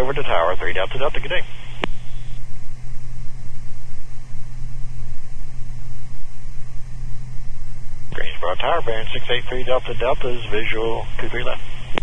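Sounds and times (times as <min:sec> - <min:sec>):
propeller engines droning: 0:07.6 - 0:12.0.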